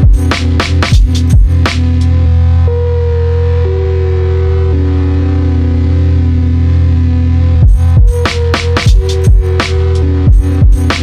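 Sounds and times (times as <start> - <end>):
heavy sustained bass: 0.0 - 11.0.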